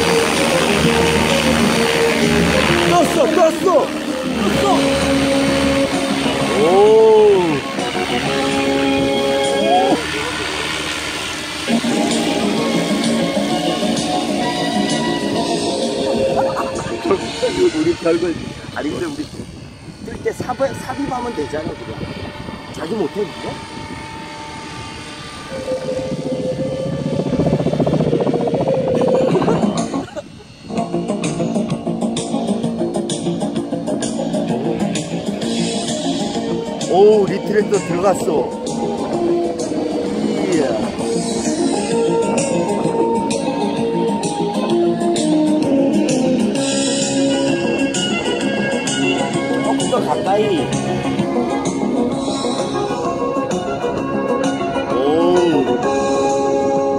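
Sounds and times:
model helicopter rotor tone: 0.0s - 56.9s
rising and falling tone: 0.0s - 56.9s
guitar music: 29.8s - 56.9s.

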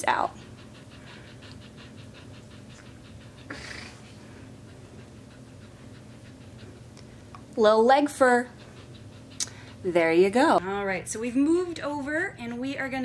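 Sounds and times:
dog panting: 0.0s - 13.0s.

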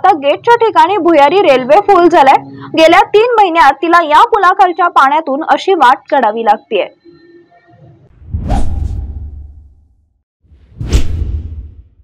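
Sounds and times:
whoosh swish over low rumble: 8.1s - 9.9s, 10.5s - 12.0s.

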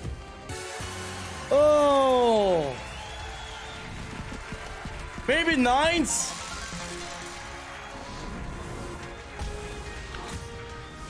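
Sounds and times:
quiet game background music: 0.0s - 11.0s.

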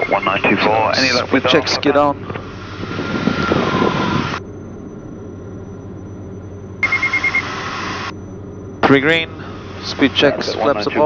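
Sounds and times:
aircraft engines droning: 0.0s - 11.0s
high beeps: 3.3s - 11.0s.

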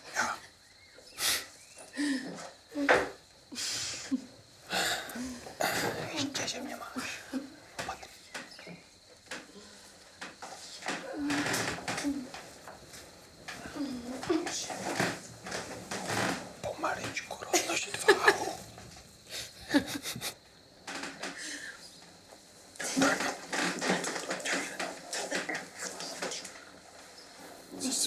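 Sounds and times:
quiet speech: 16.6s - 18.6s, 22.8s - 26.6s.

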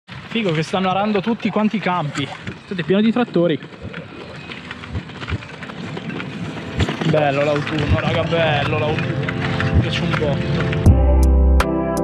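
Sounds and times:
bike rolling on asphalt: 0.1s - 10.9s.

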